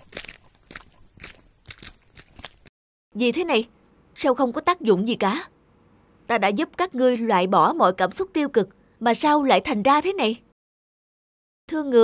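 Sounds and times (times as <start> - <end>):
cartoon footsteps on pavement: 0.0 - 2.7.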